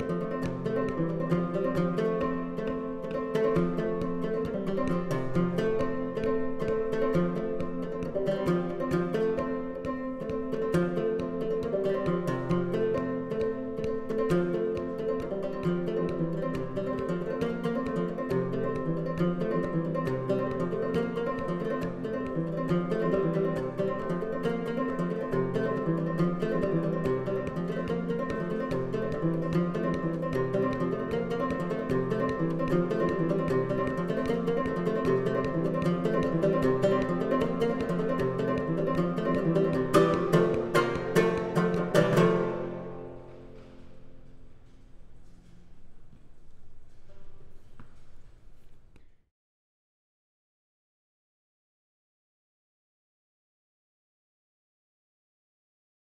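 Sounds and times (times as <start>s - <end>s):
banjo plucked tune: 0.0s - 45.4s.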